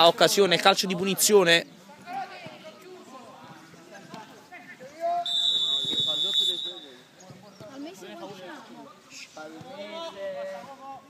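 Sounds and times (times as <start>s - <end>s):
faint players' voices: 0.0s - 11.0s
referee's whistle blast: 5.2s - 7.0s.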